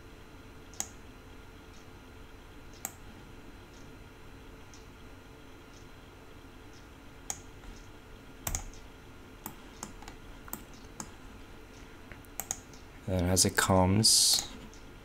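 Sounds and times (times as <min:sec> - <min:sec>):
faint steady hum: 0:00.0 - 0:15.0
keyboard and mouse clicks: 0:06.7 - 0:11.1, 0:12.4 - 0:12.9.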